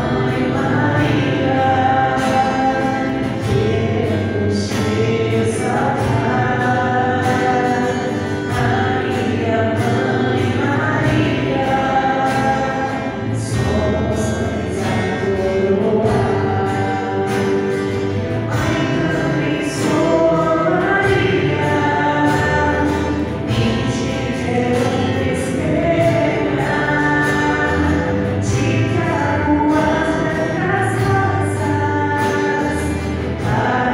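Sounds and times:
choir singing a hymn: 0:00.0 - 0:33.9.

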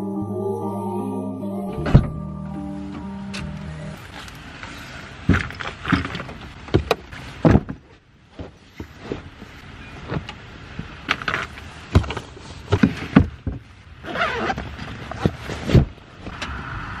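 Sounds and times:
music track: 0:00.0 - 0:04.1
knocks and thumps: 0:05.3 - 0:09.2.

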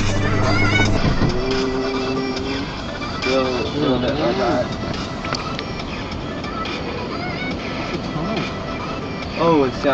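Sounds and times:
truck engine: 0:00.0 - 0:06.8
wind noise: 0:00.0 - 0:09.9.

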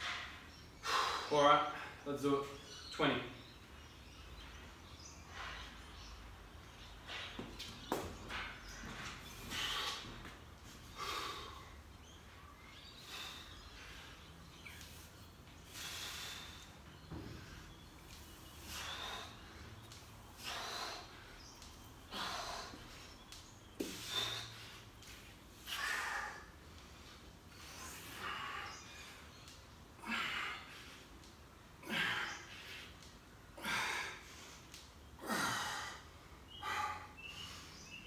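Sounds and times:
man breathing hard: 0:09.3 - 0:11.9, 0:12.6 - 0:14.8, 0:15.6 - 0:17.8, 0:18.4 - 0:23.2, 0:23.8 - 0:25.0, 0:30.0 - 0:37.9.

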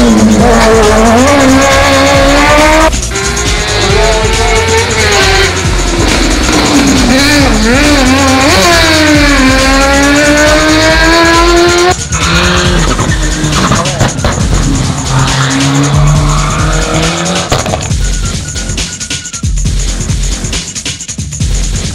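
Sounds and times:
lower-pitched car engine accelerating: 0:00.0 - 0:18.8
rally car engine revving: 0:00.0 - 0:19.1.

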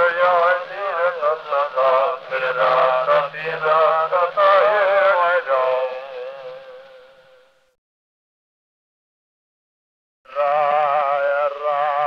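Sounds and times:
wordless melodic chant: 0:00.0 - 0:07.2, 0:10.3 - 0:12.0.

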